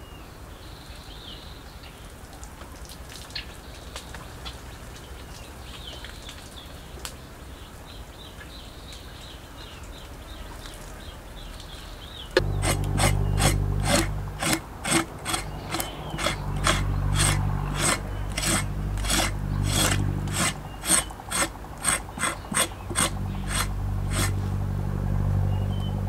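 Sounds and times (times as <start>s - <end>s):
knife scraping wet hide: 12.6s - 24.4s.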